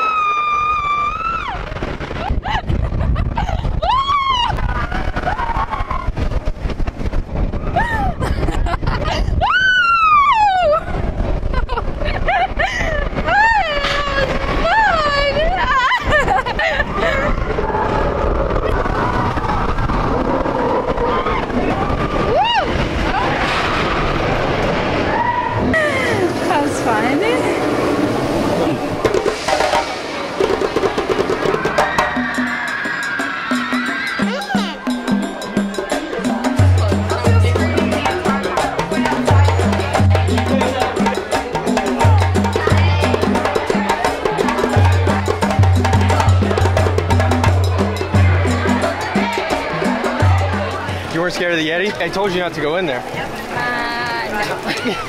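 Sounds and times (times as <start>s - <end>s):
roller coaster rumbling: 0.0s - 55.0s
music with steady beat: 31.8s - 51.1s.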